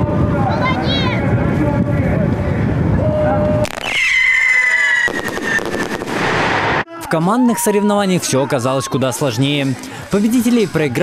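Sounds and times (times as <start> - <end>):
wind rumbling on microphone: 0.0 - 6.2
spectators' voices: 6.8 - 11.0.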